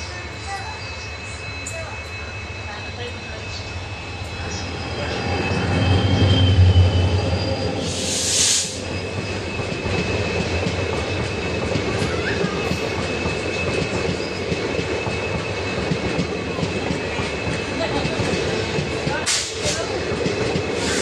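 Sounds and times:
diesel locomotive engine drone: 0:00.0 - 0:21.0
brief hiss: 0:07.9 - 0:08.8.

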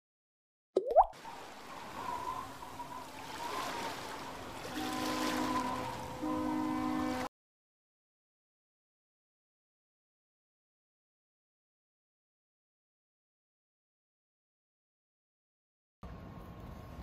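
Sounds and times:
bubbly plop: 0:00.8 - 0:01.2.

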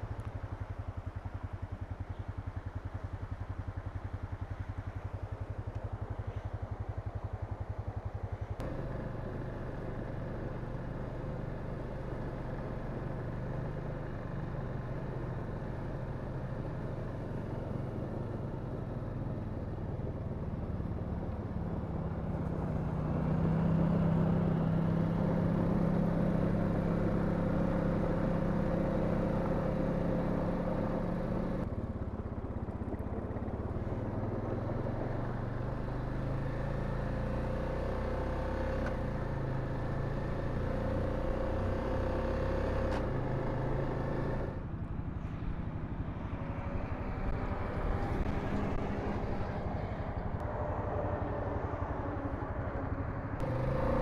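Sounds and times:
quad bike engine running: 0:00.0 - 0:45.2, 0:46.7 - 0:54.0.

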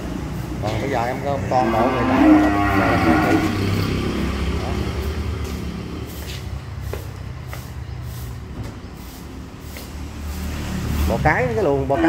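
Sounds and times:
cow mooing: 0:01.3 - 0:03.9.

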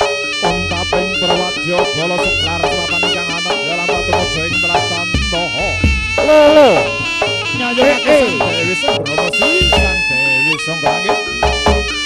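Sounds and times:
reedy wind instrument melody: 0:00.0 - 0:12.0
quick pitched percussion: 0:04.0 - 0:12.0.

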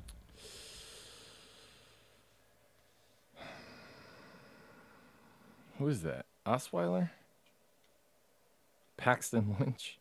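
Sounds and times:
person breathing out through nose: 0:00.3 - 0:02.3.

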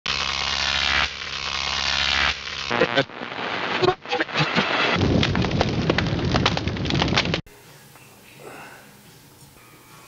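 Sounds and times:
harsh electronic buzz: 0:00.1 - 0:05.4.

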